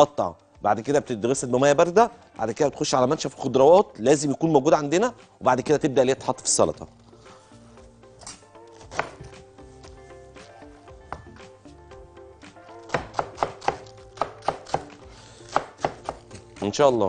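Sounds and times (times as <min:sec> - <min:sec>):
quiet background music: 0:00.0 - 0:17.0
knife chopping lettuce on board: 0:08.9 - 0:09.3, 0:12.9 - 0:16.7.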